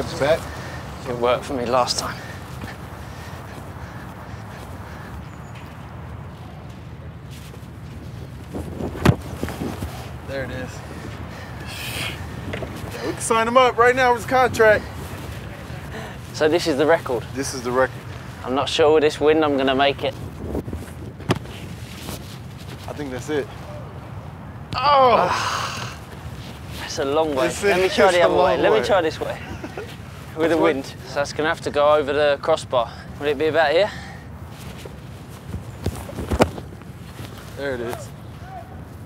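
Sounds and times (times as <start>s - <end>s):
wind rumbling on microphone: 0.0s - 27.7s, 34.3s - 39.0s
soft thuds: 8.5s - 10.0s, 20.8s - 21.7s
boot kicking football: 8.6s - 9.8s, 21.0s - 21.6s.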